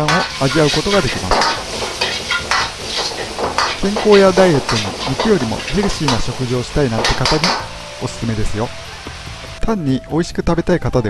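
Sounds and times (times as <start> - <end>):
metal ladle scraping wok: 0.0 - 8.0
food sizzling in wok: 0.0 - 9.7.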